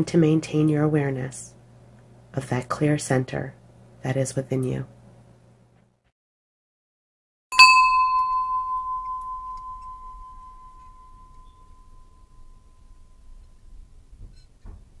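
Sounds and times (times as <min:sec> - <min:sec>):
meditation bell ringing: 0:07.5 - 0:13.8.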